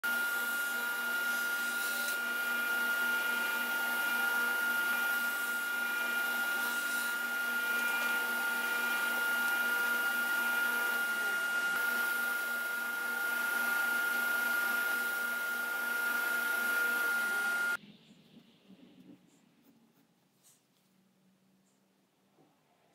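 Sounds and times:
table saw running: 0:00.0 - 0:17.8.

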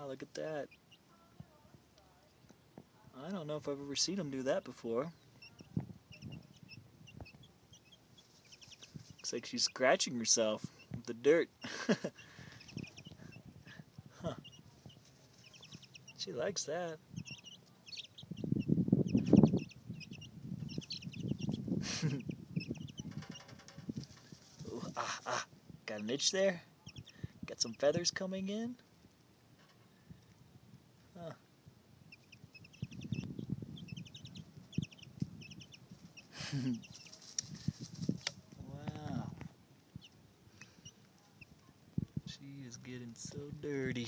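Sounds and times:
chicks peeping: 0:00.0 - 0:01.1, 0:03.2 - 0:25.3, 0:26.0 - 0:29.2, 0:32.0 - 0:43.7
chick scuffling in loose dirt: 0:03.2 - 0:11.3, 0:12.4 - 0:25.1, 0:32.3 - 0:42.3.

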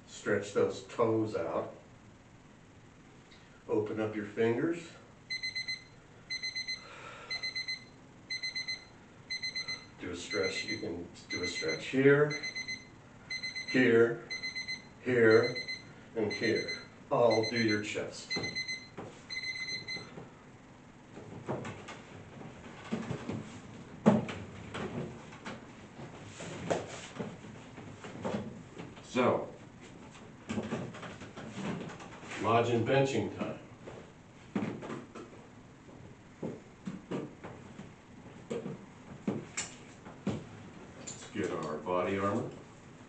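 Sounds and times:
electronic timer beeping: 0:05.3 - 0:20.1
knocks and creaks on wooden bench: 0:30.5 - 0:32.2.

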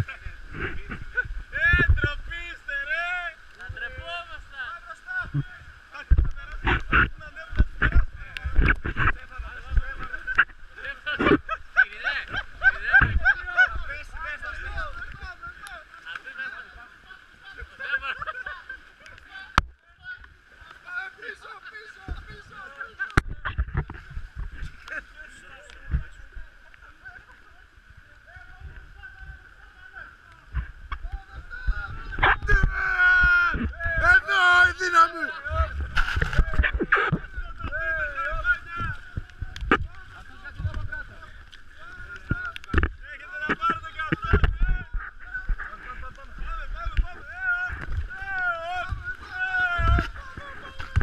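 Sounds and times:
wind rumbling on microphone: 0:00.0 - 0:15.7, 0:22.0 - 0:51.0
paddling water: 0:00.0 - 0:51.0
people's voices: 0:00.0 - 0:51.0
people calling out: 0:30.9 - 0:42.6, 0:43.2 - 0:51.0.

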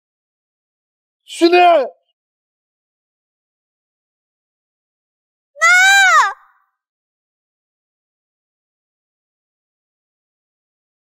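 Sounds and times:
woman's anguished cry: 0:05.6 - 0:06.4.

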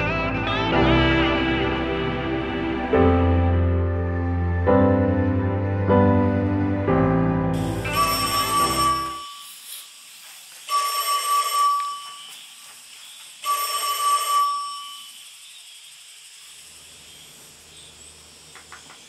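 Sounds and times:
telephone ringing: 0:07.6 - 0:09.5, 0:10.7 - 0:12.4, 0:13.4 - 0:15.1.

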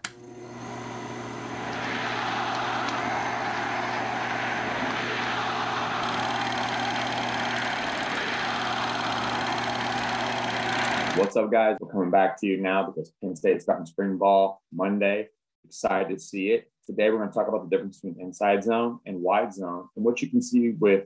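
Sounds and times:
film projector whirring: 0:00.0 - 0:11.3.

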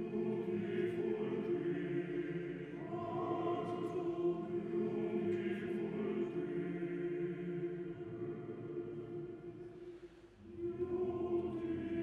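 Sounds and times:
male choir singing: 0:00.0 - 0:09.5, 0:10.4 - 0:12.0.

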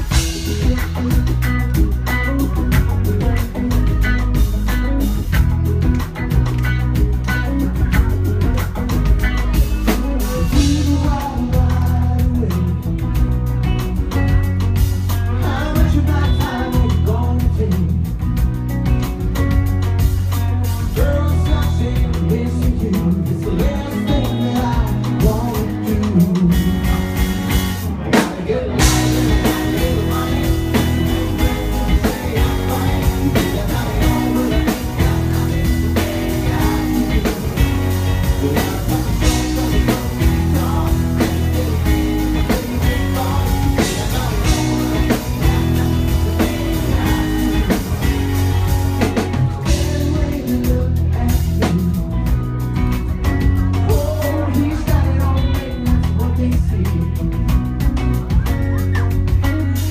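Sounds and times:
male lead vocal: 0:00.0 - 0:19.6, 0:20.6 - 0:59.9
drums: 0:00.0 - 0:59.9
electric bass: 0:00.0 - 0:59.9
electric guitar: 0:00.0 - 0:59.9.

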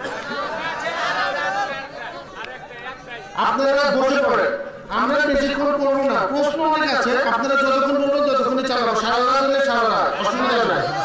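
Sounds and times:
indistinct chatter: 0:00.0 - 0:03.8.

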